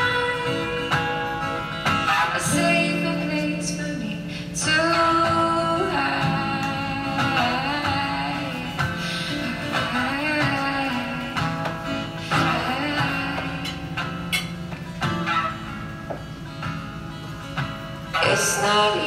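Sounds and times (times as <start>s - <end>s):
woman singing: 0.0s - 14.5s, 18.1s - 19.0s
acoustic guitar strumming: 0.0s - 19.0s.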